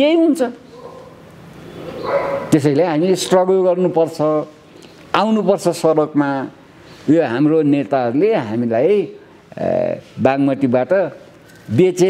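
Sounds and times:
man speaking: 0:02.5 - 0:12.0.

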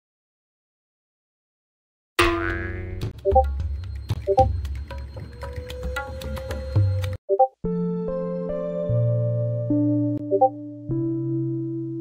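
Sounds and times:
background music: 0:02.6 - 0:12.0.

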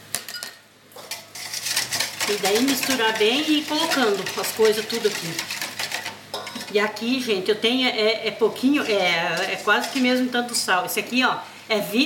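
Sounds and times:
wire whisk clinking in metal bowl: 0:00.4 - 0:06.8, 0:08.8 - 0:10.6.

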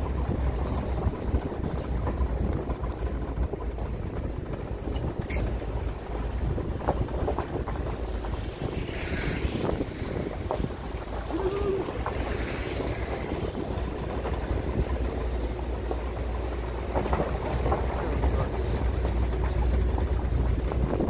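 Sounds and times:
vehicle rumble on gravel: 0:00.0 - 0:21.0
wind buffeting microphone: 0:00.0 - 0:21.0.

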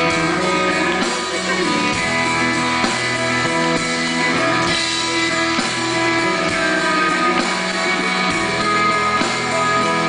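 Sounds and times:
live rock band instrumental: 0:00.0 - 0:10.0
picked electric guitar: 0:00.0 - 0:10.0.

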